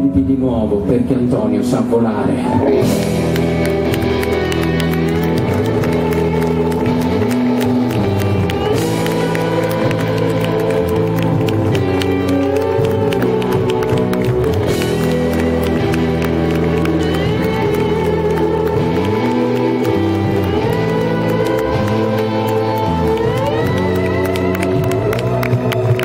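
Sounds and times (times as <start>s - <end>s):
audience cheering and clapping: 2.5s - 26.0s
live band playing sliding notes: 2.5s - 26.0s.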